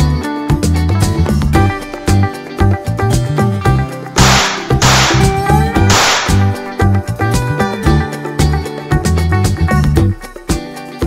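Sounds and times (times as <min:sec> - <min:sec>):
upbeat music with guitar: 0:00.0 - 0:11.0.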